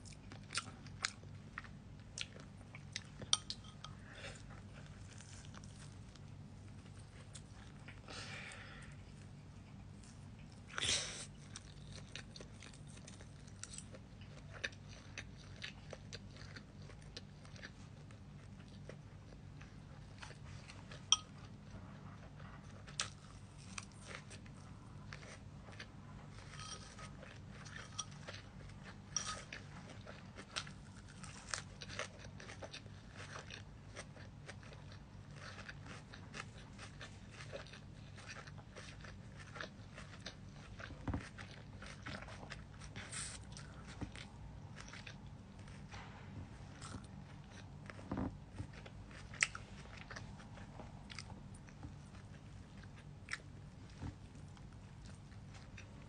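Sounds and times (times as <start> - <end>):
chewing salad crunches: 0.0 - 8.9, 9.6 - 56.0
low steady hum: 0.0 - 56.0.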